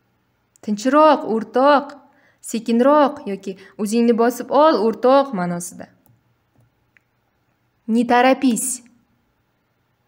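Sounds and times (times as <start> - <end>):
person speaking: 0.6 - 6.1, 7.8 - 9.0.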